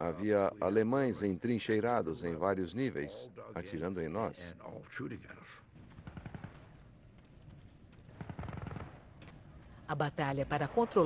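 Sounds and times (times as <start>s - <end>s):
machine-gun fire bursts: 5.8s - 6.8s, 8.1s - 9.2s.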